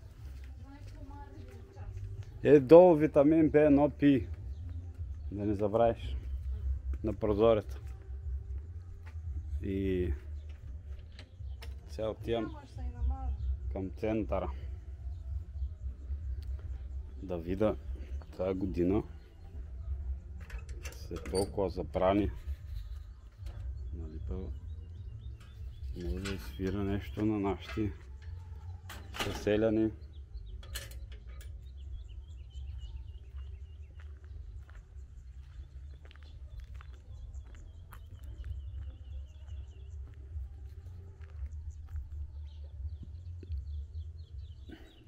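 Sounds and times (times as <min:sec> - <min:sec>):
steady low rumble: 0:00.0 - 0:29.1, 0:29.9 - 0:44.6
small birds chirping: 0:00.0 - 0:45.0.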